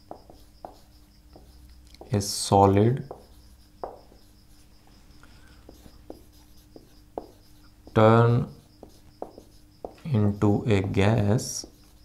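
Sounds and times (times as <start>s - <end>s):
marker pen writing on whiteboard: 0.0s - 12.0s.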